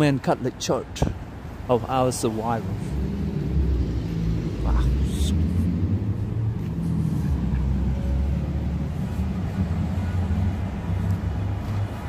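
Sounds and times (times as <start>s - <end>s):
cars driving past: 0.9s - 12.0s.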